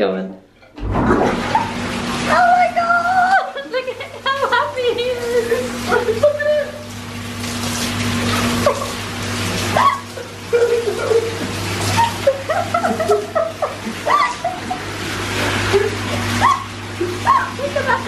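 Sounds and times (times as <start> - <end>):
bath pump humming: 0.0 - 18.0
jets churning bathwater: 0.7 - 18.0.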